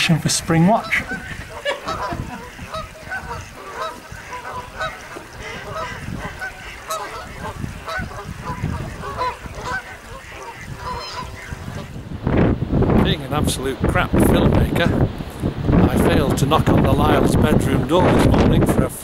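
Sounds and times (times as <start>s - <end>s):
geese honking: 0.1s - 12.0s.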